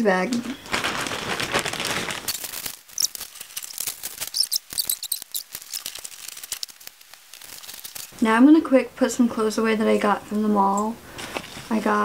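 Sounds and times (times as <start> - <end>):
plastic bag rustling: 0.2 - 8.3, 11.1 - 12.0.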